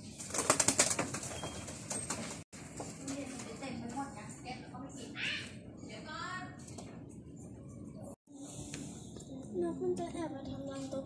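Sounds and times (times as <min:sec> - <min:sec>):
pigeon wing flaps: 0:00.2 - 0:02.4.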